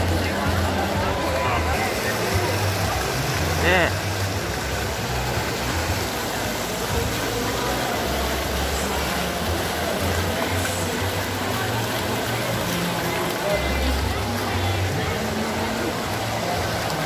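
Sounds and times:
crowd murmur: 0.0 - 17.0
fountain water splashing: 0.0 - 17.0.

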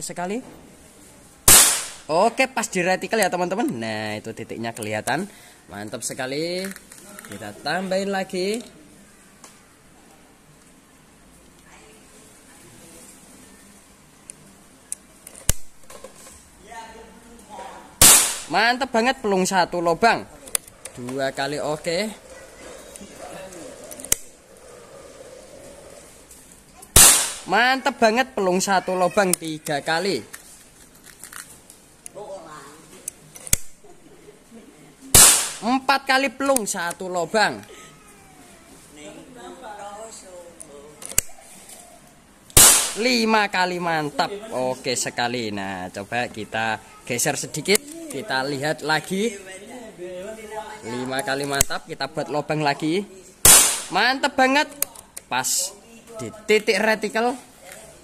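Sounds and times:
air rifle shot: 1.5 - 2.1, 18.0 - 18.5, 27.0 - 27.5, 35.2 - 35.6, 42.6 - 43.0, 53.4 - 54.0
sharp metallic snap: 1.5 - 2.1, 18.0 - 18.5, 26.9 - 27.5, 35.2 - 35.6, 42.5 - 43.0, 53.4 - 54.0
air rifle action clicks: 14.9 - 15.7, 33.0 - 33.7, 41.0 - 41.3.

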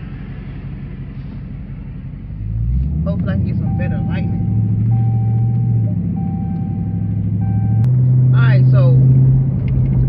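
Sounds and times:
car engine low drone: 0.0 - 10.0.

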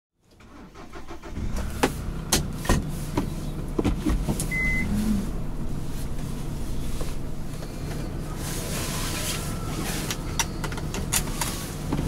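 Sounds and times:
car engine running: 0.4 - 12.0
short electronic beep: 4.5 - 4.9.

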